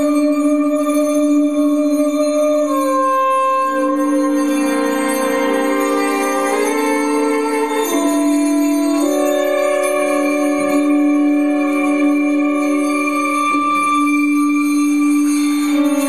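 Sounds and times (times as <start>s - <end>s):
soprano saxophone: 0.0s - 16.0s.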